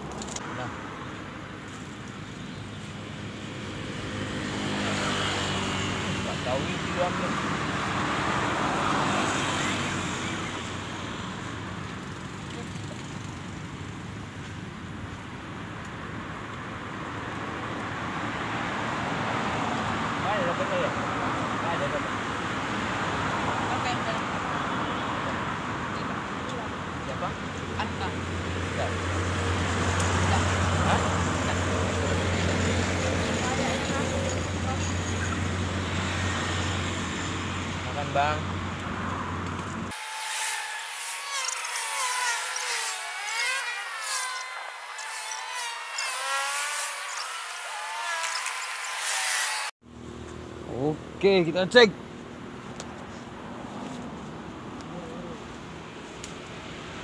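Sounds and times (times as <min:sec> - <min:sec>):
road traffic rumble: 0:00.0 - 0:57.0
vehicle passing close by: 0:03.6 - 0:11.1.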